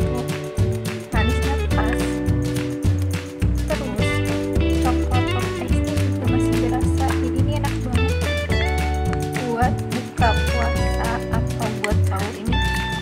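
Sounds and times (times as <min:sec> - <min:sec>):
background music with bass: 0:00.0 - 0:13.0.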